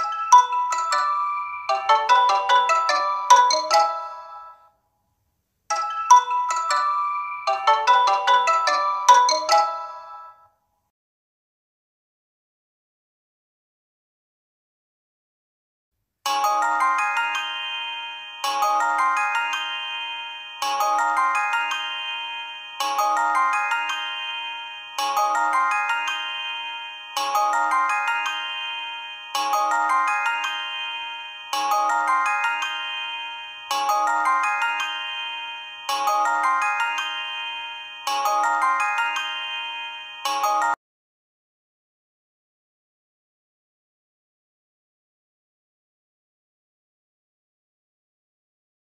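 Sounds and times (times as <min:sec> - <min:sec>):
ringtone bell-like notes: 0:00.0 - 0:04.8, 0:05.7 - 0:10.6, 0:16.3 - 0:40.8.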